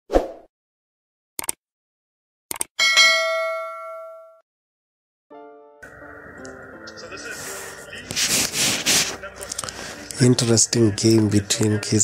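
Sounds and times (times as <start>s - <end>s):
notification bell ding: 2.8s - 4.4s.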